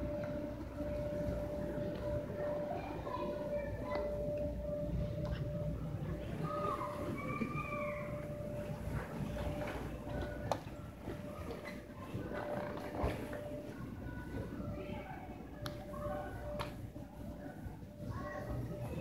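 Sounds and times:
arcade machines beeping: 0.0 - 19.0
murmur of voices: 0.0 - 19.0.

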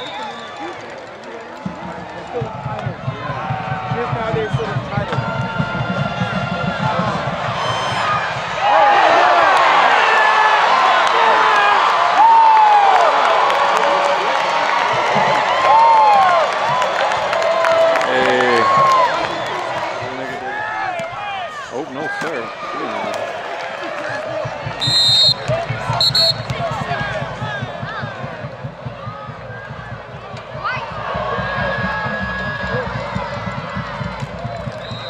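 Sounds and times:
stadium crowd shouting and cheering: 0.0 - 35.0
short high-pitched whistle blasts: 24.8 - 26.5.

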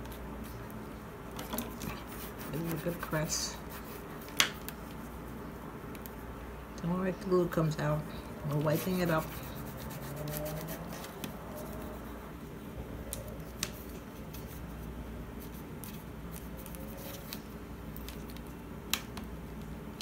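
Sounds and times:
steady low hum: 0.0 - 20.0
bone folder rubbing paper: 1.9 - 4.2, 8.5 - 12.2.

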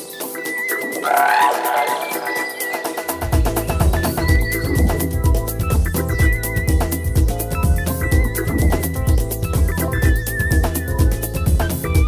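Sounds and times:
house music: 0.0 - 12.0
rapid hi-hats: 0.0 - 12.0
sweep effect: 1.0 - 3.3.

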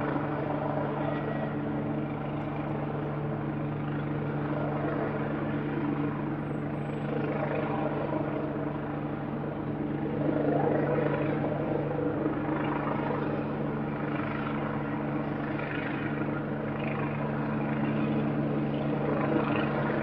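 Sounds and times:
helicopter rotor chopping: 0.0 - 20.0.

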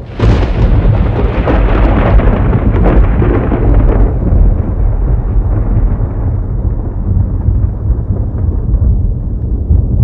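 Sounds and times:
deep rumble with crackles: 0.0 - 10.0.

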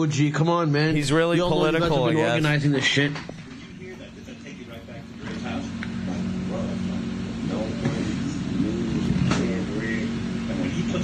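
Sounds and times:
steady low hum: 0.9 - 11.0.

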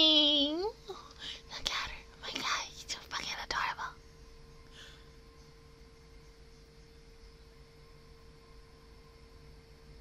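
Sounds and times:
breathy whispered sounds: 0.8 - 4.0.

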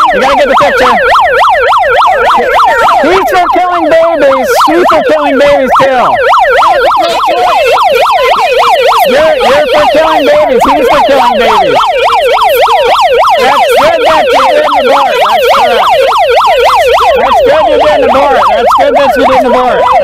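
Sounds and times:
megaphone siren yelping: 0.0 - 20.0.

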